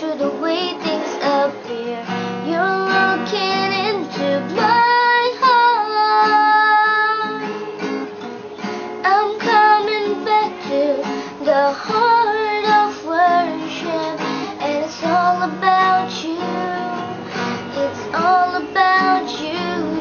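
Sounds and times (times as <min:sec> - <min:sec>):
woman singing: 0:00.0 - 0:07.9, 0:09.0 - 0:20.0
acoustic guitar strumming: 0:00.0 - 0:20.0.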